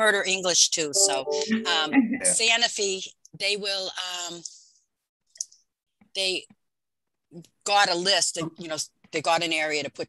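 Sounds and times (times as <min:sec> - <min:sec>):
person saying um: 0:01.0 - 0:02.4.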